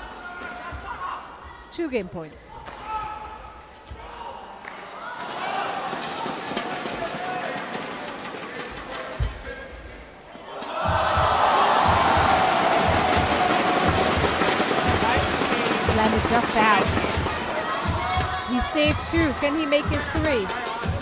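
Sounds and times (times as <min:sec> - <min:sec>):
crowd cheering and chanting: 0:10.3 - 0:21.0
rhythmic low thumping: 0:10.8 - 0:21.0.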